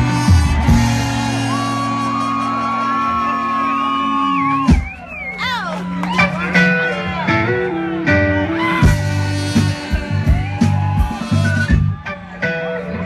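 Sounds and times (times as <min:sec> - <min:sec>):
live soul band playing: 0:00.0 - 0:13.0.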